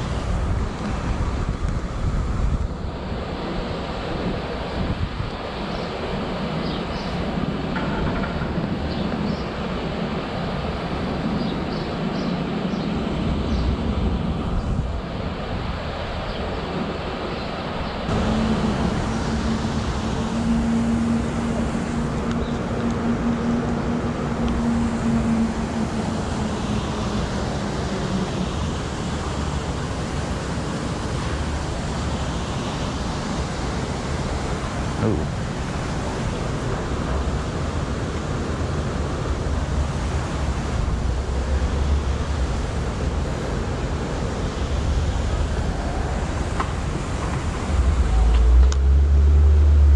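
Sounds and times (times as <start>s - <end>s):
street traffic: 0.0s - 49.9s
low engine hum: 18.0s - 49.9s.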